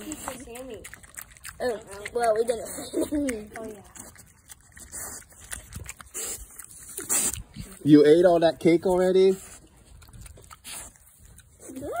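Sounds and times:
pig smacking and licking: 0.0 - 12.0.

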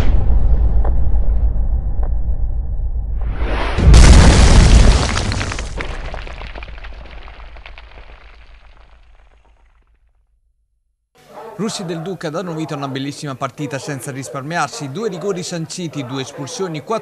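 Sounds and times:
low rumble: 0.0 - 5.0
deep cinematic boom: 0.0 - 5.2.

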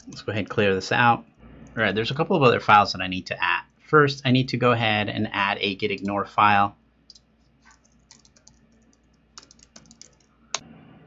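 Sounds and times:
keyboard typing: 7.1 - 10.6.

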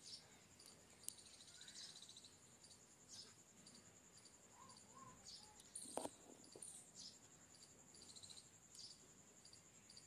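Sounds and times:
birds chirping: 0.0 - 10.0
cricket trilling: 0.0 - 10.0.

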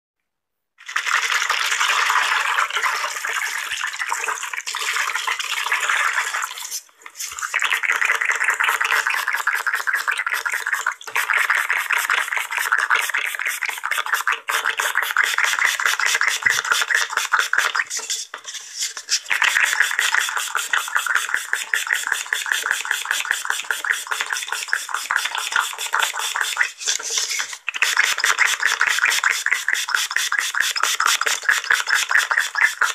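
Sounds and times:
spray bottle hissing sprays: 9.0 - 18.2, 19.1 - 32.9.

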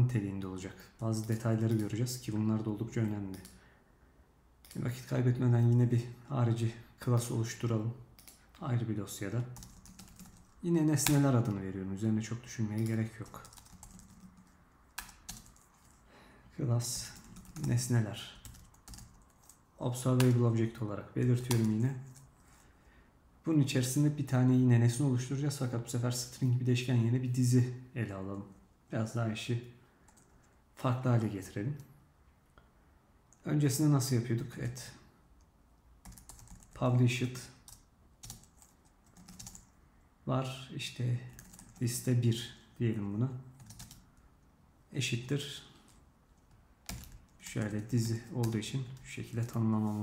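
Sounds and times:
typing on keyboard: 9.4 - 11.6, 12.8 - 16.0, 17.0 - 19.6, 36.0 - 36.8, 37.6 - 39.7, 41.3 - 41.8, 43.6 - 44.1, 46.8 - 49.6.

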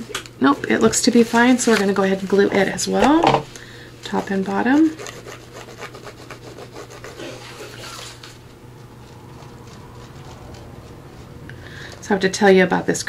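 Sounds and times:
paper handling: 1.1 - 2.2.

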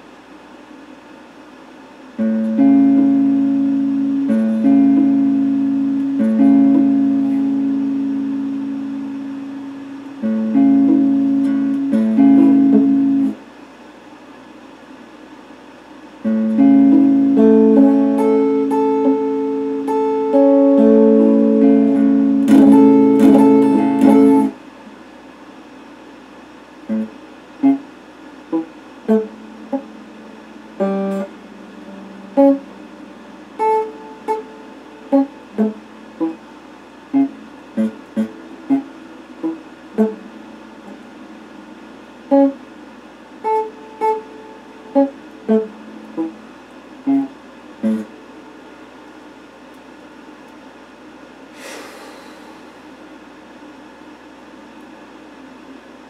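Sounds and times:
electric guitar chords ringing: 2.2 - 13.4, 16.2 - 24.6, 26.9 - 48.6
single guitar notes picked: 2.2 - 13.4, 16.2 - 24.6, 26.9 - 27.9, 28.5 - 42.7, 43.4 - 48.3.

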